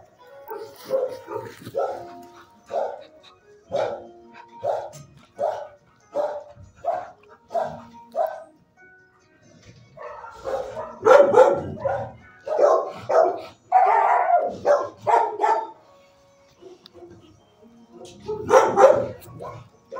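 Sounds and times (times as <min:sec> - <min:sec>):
dogs barking: 0:00.0 - 0:08.6, 0:09.6 - 0:19.9.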